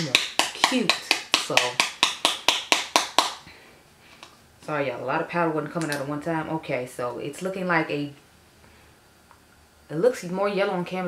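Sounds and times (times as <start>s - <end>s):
powder jar tapping: 0.0s - 3.4s.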